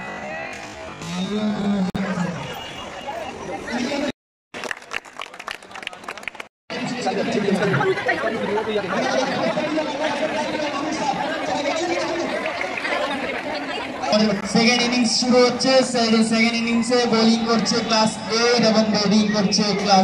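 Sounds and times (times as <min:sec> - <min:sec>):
boys chattering: 0:06.7 - 0:20.0.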